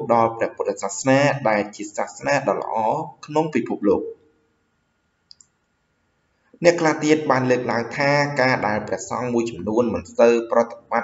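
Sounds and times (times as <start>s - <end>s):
narrator speaking: 0.0s - 4.1s, 6.6s - 11.0s.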